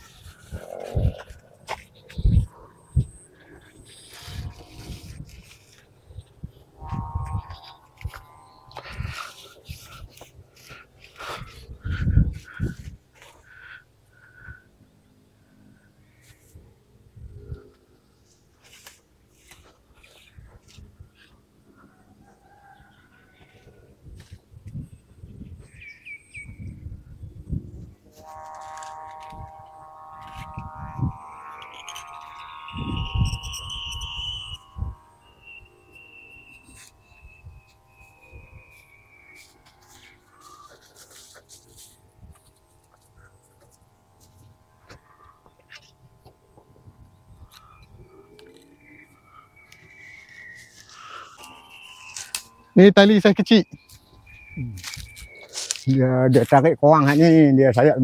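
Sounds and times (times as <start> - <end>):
wind buffeting microphone: 0.0 - 10.5, 11.2 - 13.1, 26.4 - 28.1
steady pitched drone: 0.0 - 58.0
bird chirps: 25.4 - 27.4, 30.8 - 40.7, 47.1 - 56.0.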